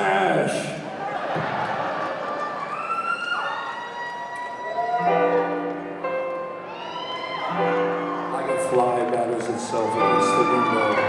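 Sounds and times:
symphony orchestra playing: 5.0 - 11.0.

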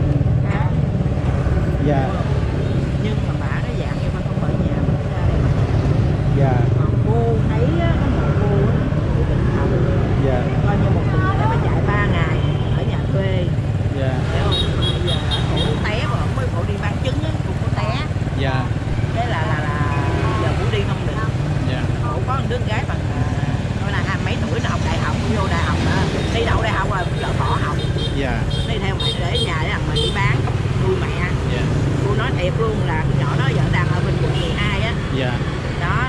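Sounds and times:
motorbike traffic rumble: 0.0 - 36.0
voices talking: 0.0 - 36.0.

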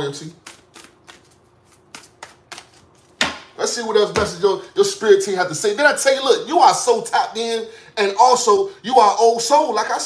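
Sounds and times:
cards being shuffled: 0.3 - 3.4.

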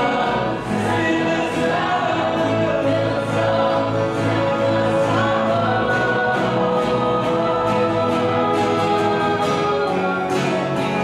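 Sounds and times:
group of voices singing: 0.0 - 11.0
worship band on guitars and keyboard: 0.0 - 11.0.

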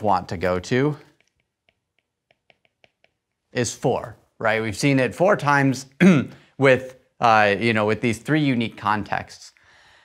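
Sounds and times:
pen tapping and scratching on tablet: 1.1 - 3.4.

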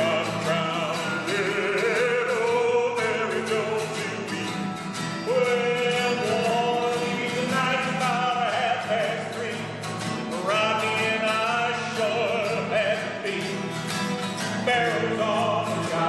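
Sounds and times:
men singing operatically: 0.0 - 13.8, 14.6 - 16.0
acoustic guitars strumming: 0.0 - 16.0.

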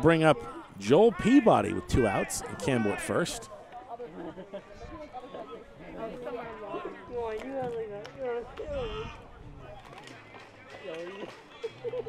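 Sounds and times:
low voices talking: 0.0 - 7.8
ballpark crowd murmur: 0.0 - 12.0.

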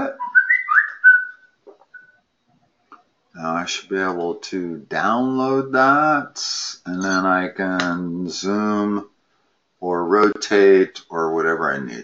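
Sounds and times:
person whistling: 0.0 - 2.2.

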